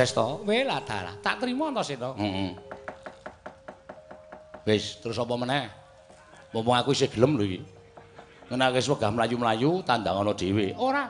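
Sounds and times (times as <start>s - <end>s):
wooden mallet knocking on wood: 2.4s - 5.0s, 7.2s - 9.2s.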